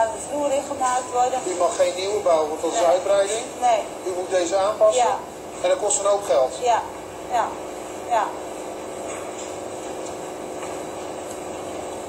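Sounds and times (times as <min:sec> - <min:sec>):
pig barn hum and hiss: 0:00.0 - 0:12.0.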